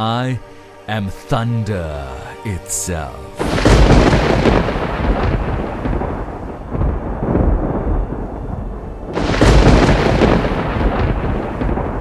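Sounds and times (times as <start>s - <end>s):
rumbling thunder: 3.4s - 12.0s.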